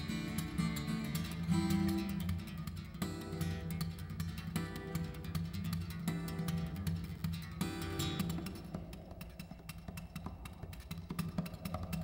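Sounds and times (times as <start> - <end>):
taps and slaps on guitar body: 0.0 - 12.0.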